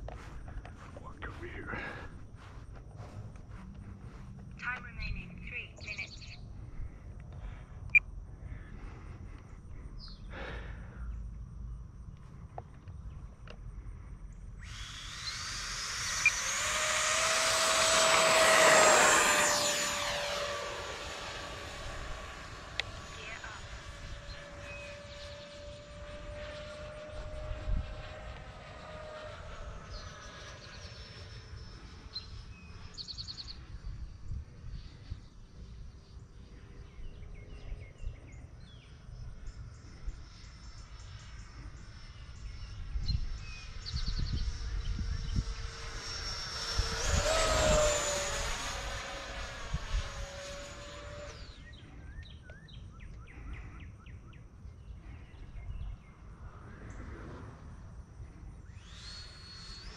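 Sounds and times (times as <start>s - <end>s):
model jet whine: 0.0s - 59.9s.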